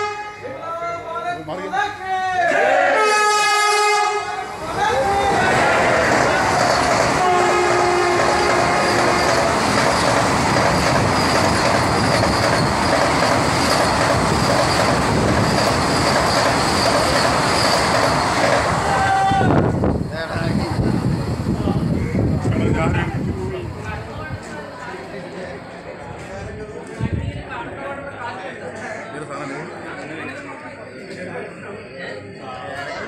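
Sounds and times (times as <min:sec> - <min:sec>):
train horn: 0:00.0 - 0:00.6, 0:02.8 - 0:04.6, 0:07.2 - 0:09.5
train rushing past: 0:03.5 - 0:27.9.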